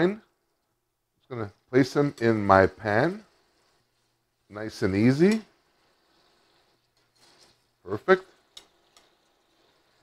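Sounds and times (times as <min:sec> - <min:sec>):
person speaking: 0:01.2 - 0:03.6, 0:04.2 - 0:05.6, 0:07.8 - 0:08.4
hiss of heating fat: 0:01.3 - 0:10.0
meat sizzling in fat: 0:01.7 - 0:10.0.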